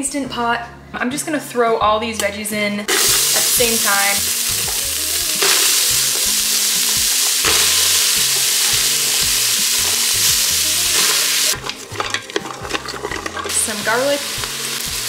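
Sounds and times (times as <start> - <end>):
vegetables sizzling in a pot: 2.9 - 15.0
utensil stirring against steel: 4.6 - 15.0.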